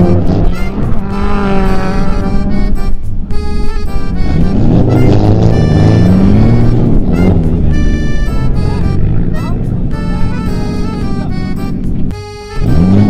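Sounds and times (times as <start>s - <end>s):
background music with held notes: 0.0s - 13.0s
car engine revving: 0.0s - 13.0s.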